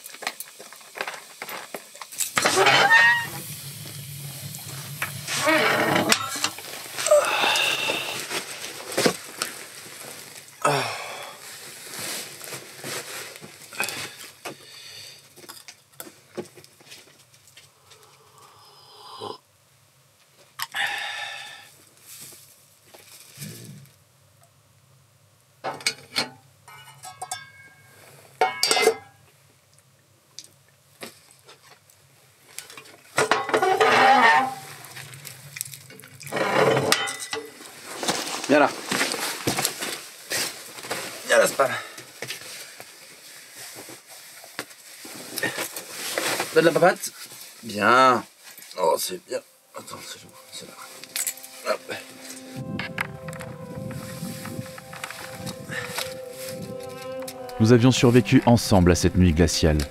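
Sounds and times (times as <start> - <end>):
plastic bag rustling: 3.2 - 14.4, 37.5 - 47.7.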